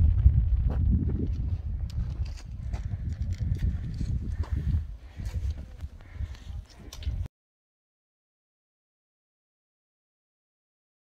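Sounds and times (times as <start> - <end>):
steady low rumble: 0.0 - 7.3
footsteps crunching on scree: 0.6 - 6.9.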